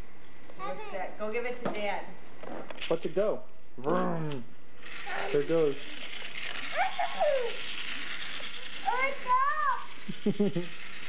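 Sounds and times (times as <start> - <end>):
child squealing: 6.7 - 7.7.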